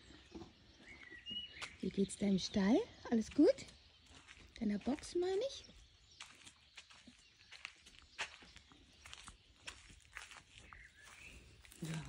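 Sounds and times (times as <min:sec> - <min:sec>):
footsteps scuffing through straw: 0:06.2 - 0:12.0.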